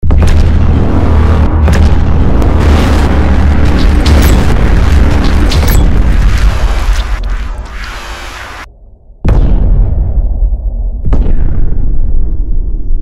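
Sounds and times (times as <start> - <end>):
fireworks booming rumble: 0.0 - 13.0
fireworks crackles and pops: 1.7 - 8.7.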